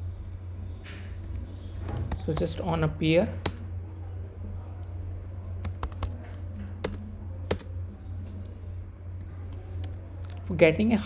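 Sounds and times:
steady low hum: 0.0s - 11.0s
keyboard keys clicking: 5.6s - 7.8s.

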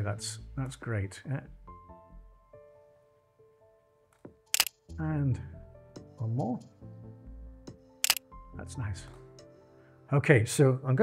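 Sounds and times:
soft background music: 0.0s - 11.0s
camera shutter double click: 4.5s - 4.8s, 8.0s - 8.2s.

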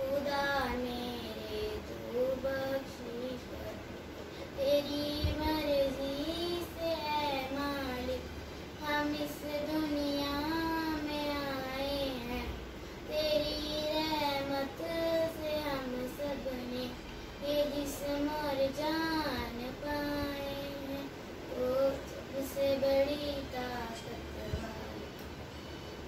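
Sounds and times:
girl singing unaccompanied: 0.0s - 25.3s.

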